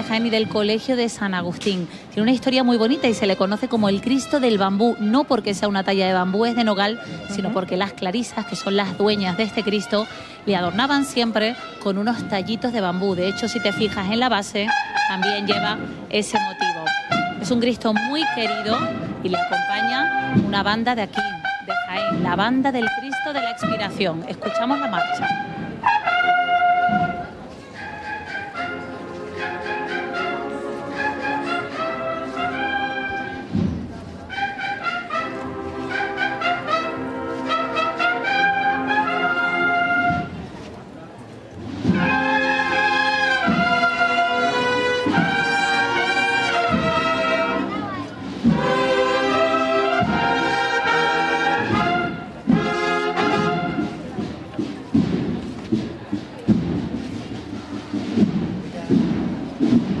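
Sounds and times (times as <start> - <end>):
brass band playing march: 0.0 - 40.7, 41.5 - 60.0
drum beats: 7.3 - 40.5, 41.6 - 60.0.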